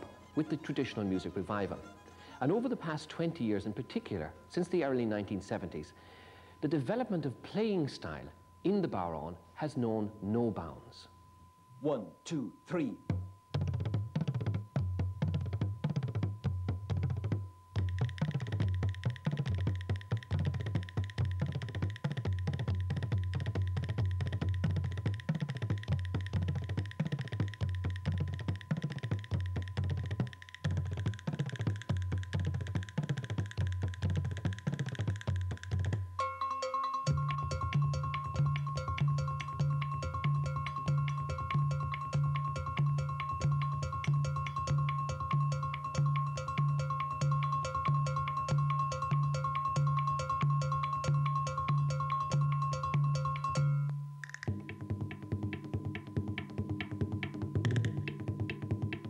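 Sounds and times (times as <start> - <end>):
bodhran drumming: 0.0 - 5.8, 13.0 - 59.0
steady high held tone: 0.0 - 14.4, 36.1 - 54.2
ringing bell-like notes: 0.0 - 19.6, 36.1 - 54.2.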